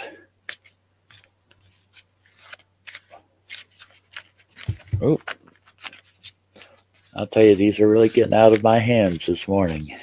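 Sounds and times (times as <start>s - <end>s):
cards being shuffled: 0.4s - 10.0s.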